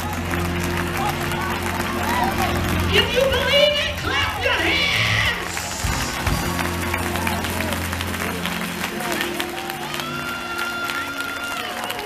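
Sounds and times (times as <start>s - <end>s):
band holding low chord: 0.0s - 10.6s
hand claps: 5.4s - 12.0s.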